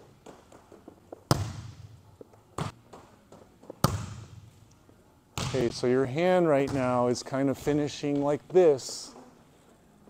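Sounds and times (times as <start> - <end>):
volleyballs thudding in gym: 0.1 - 4.7, 5.3 - 9.3.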